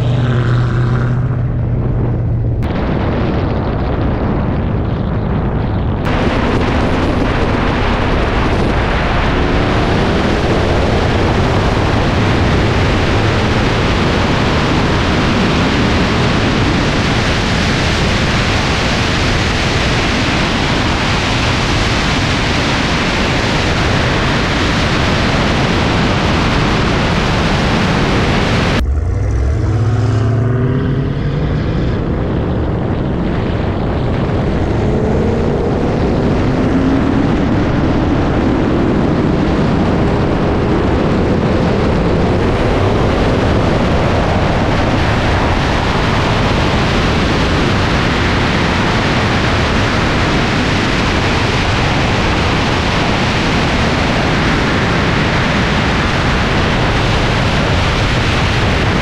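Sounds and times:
engines at full throttle: 0.0s - 59.0s
wind rushing: 0.0s - 59.0s.

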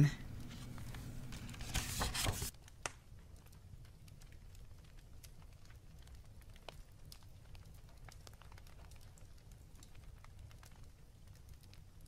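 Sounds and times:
low steady hum: 0.0s - 7.0s
faint clicks and crackles: 0.3s - 12.0s.

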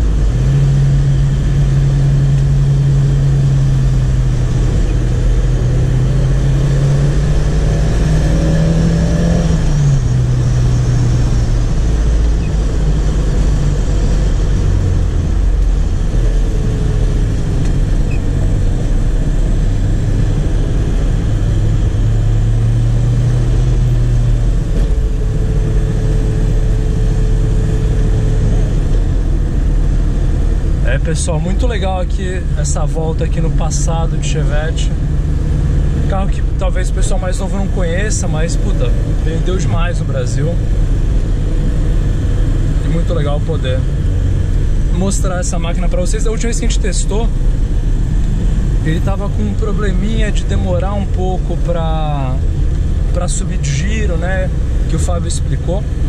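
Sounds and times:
car engine revving: 0.0s - 56.0s
road noise inside car: 0.0s - 56.0s.

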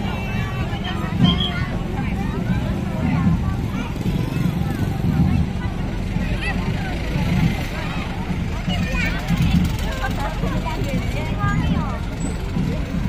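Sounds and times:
crowd babble of voices: 0.0s - 13.0s
motorcycle engines rumbling: 0.0s - 13.0s.

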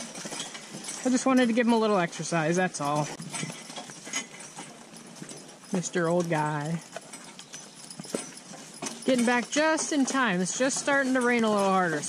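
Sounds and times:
horse hooves clip-clopping on dirt: 0.0s - 12.0s.

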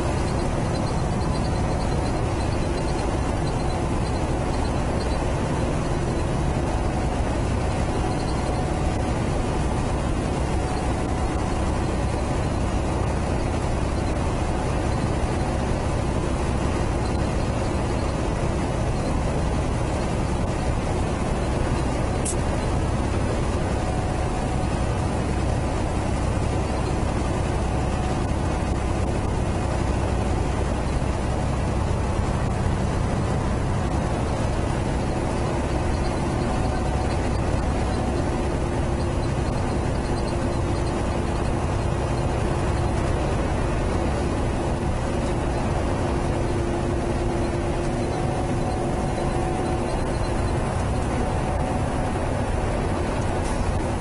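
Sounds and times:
truck diesel engine drone: 0.0s - 54.0s
tyre road noise: 0.0s - 54.0s.

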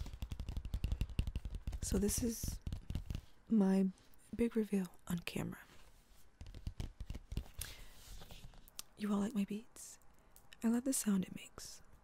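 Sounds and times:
papery sliding rustle: 7.4s - 8.7s.

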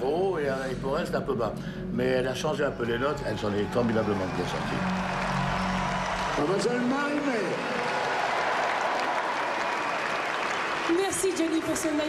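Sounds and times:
stadium crowd applauding: 3.3s - 12.0s.

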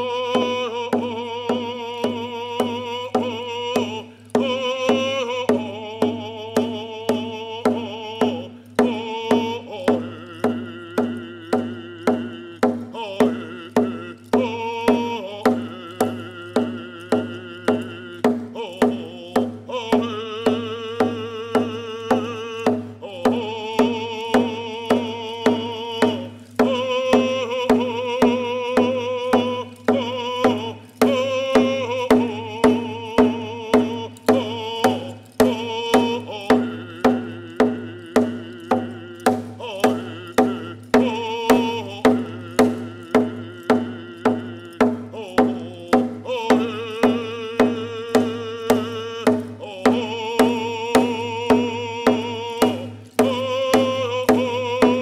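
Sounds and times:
hand drum beating: 0.0s - 55.0s
man singing: 0.0s - 55.0s.

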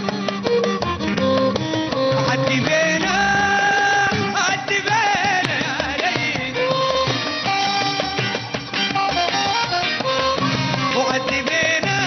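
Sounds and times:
live band instrumental music: 0.0s - 12.0s
steady percussion beat: 0.0s - 12.0s.

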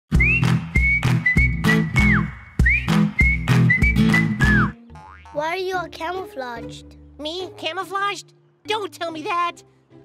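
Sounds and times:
bass and drum beat: 0.1s - 4.8s
whistled melody: 0.1s - 5.0s.

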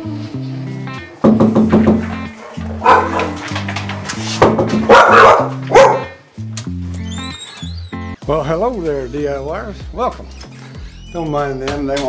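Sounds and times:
background music: 0.0s - 12.0s
dogs barking: 2.2s - 6.2s.

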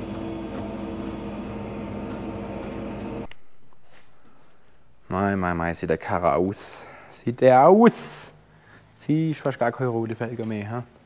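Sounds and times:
tractor engine running: 0.0s - 3.3s.

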